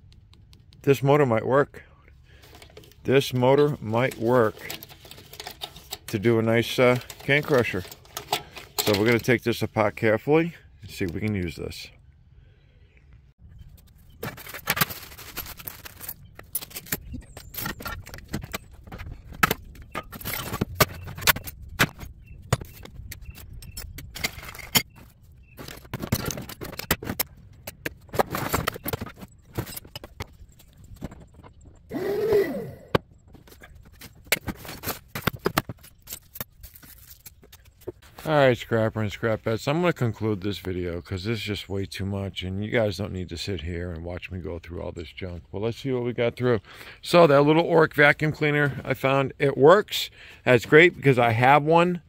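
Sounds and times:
scrap metal clinking and scraping: 0:02.3 - 0:10.1, 0:13.7 - 0:31.9, 0:33.2 - 0:38.3.

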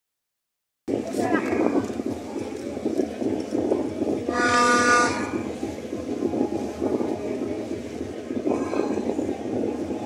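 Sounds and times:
crowd noise: 0:00.9 - 0:10.0
horn blast: 0:04.3 - 0:05.4.

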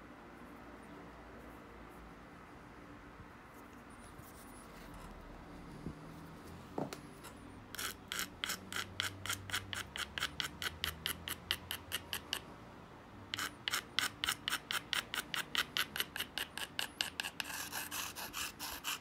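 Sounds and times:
stone rubbing knife edge: 0:07.2 - 0:12.5, 0:13.3 - 0:19.0.

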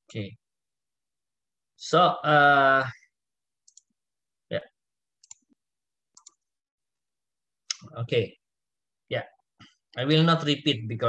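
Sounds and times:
computer mouse clicks: 0:03.6 - 0:03.9, 0:05.2 - 0:06.5.

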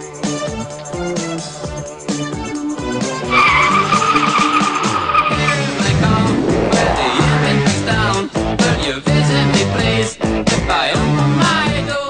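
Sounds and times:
background music: 0:00.0 - 0:12.0
car tyres squealing: 0:03.1 - 0:06.2.

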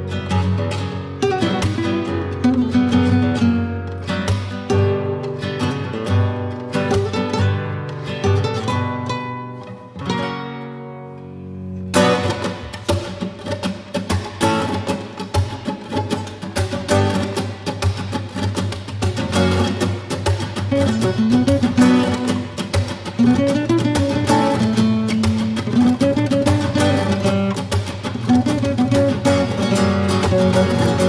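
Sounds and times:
fast rhythmic guitar strumming: 0:00.0 - 0:31.0
nylon-string guitars playing flamenco: 0:00.0 - 0:31.0.

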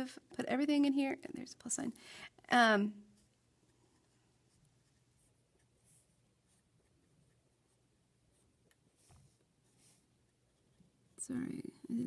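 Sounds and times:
pen scratching on paper: 0:03.2 - 0:11.1.

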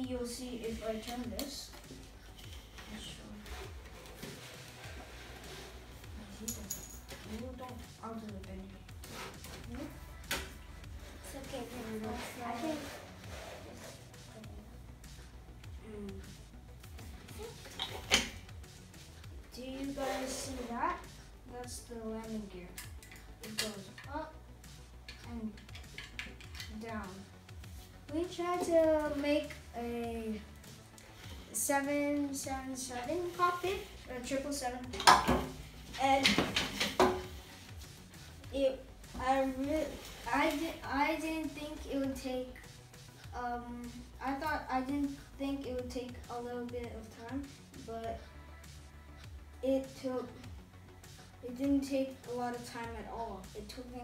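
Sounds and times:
child's voice: 0:00.0 - 0:02.0, 0:07.2 - 0:08.8, 0:09.5 - 0:10.4, 0:11.0 - 0:13.1, 0:13.7 - 0:14.7, 0:15.8 - 0:16.3, 0:17.2 - 0:17.8, 0:19.5 - 0:22.8, 0:23.4 - 0:24.4, 0:25.1 - 0:25.7, 0:26.6 - 0:27.3, 0:28.1 - 0:30.5, 0:31.5 - 0:35.4, 0:36.0 - 0:36.6, 0:38.4 - 0:42.6, 0:43.3 - 0:48.4, 0:49.6 - 0:50.5, 0:51.4 - 0:54.0.

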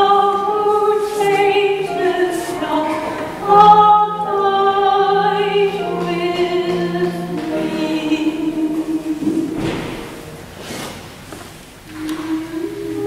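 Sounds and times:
person singing slow melody: 0:00.0 - 0:09.8, 0:11.9 - 0:13.0
piano accompaniment: 0:00.0 - 0:13.0.

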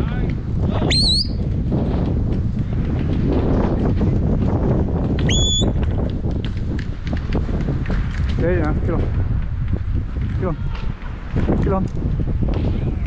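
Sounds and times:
wind rumbling on microphone: 0:00.0 - 0:13.0
short high whistle notes: 0:05.3 - 0:05.7.

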